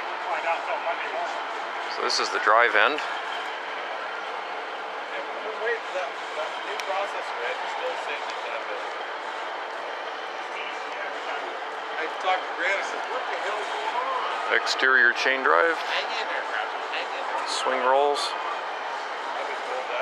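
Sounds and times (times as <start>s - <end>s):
distant people talking: 0.0s - 20.0s
steady outdoor noise: 0.0s - 20.0s.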